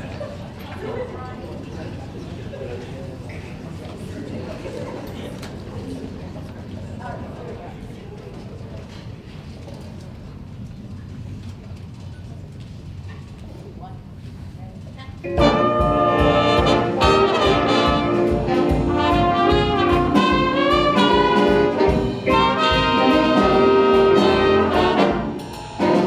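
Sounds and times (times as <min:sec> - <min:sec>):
jazz big band playing: 0:15.2 - 0:26.0
rhythm section beat: 0:15.3 - 0:26.0
trumpet section: 0:15.3 - 0:26.0.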